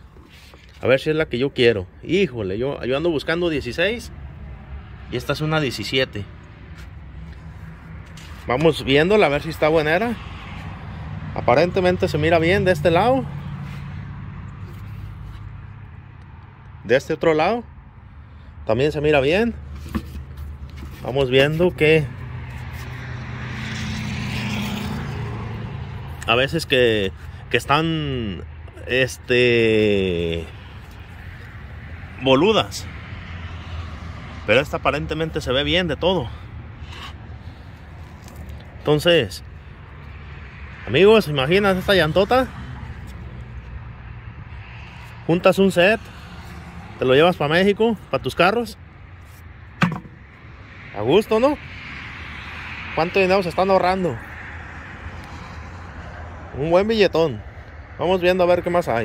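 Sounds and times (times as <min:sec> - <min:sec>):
sharp knock: 0:49.8 - 0:50.2.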